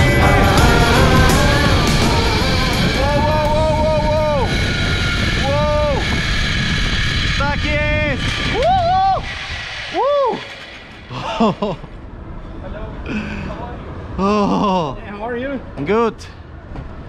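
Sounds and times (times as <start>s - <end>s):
wind rushing on microphone: 0.0s - 10.4s
man yelling whoops: 2.9s - 4.6s, 8.5s - 9.3s.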